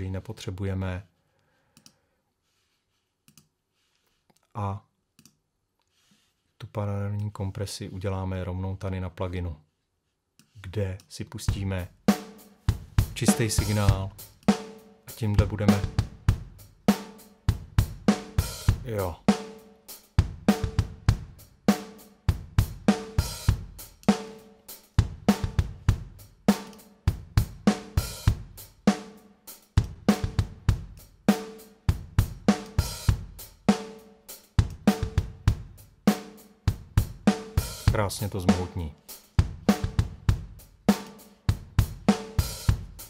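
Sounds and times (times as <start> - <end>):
drum kit playing a beat: 11.4 - 43.0.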